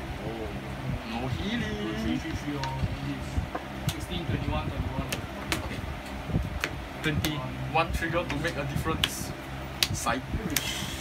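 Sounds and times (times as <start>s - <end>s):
voices talking: 0.1s - 6.2s.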